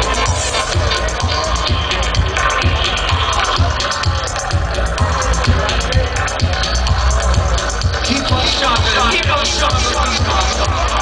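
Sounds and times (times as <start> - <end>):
deep heavy bassline: 0.0 - 11.0
reggae dub through sound system: 0.0 - 11.0.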